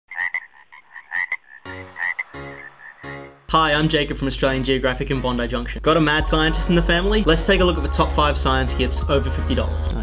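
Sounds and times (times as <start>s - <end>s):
frog chirps: 0.1s - 3.4s
frog low buzzing croak: 0.1s - 3.4s.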